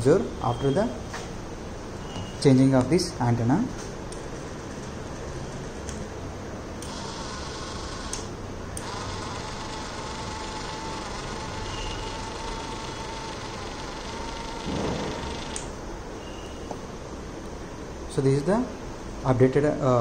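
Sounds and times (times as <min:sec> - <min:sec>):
gear motor whining: 0:06.8 - 0:15.8.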